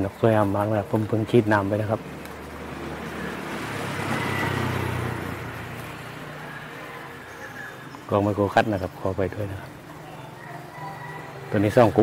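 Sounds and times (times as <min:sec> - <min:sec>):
road vehicle passing by: 0:00.0 - 0:12.0.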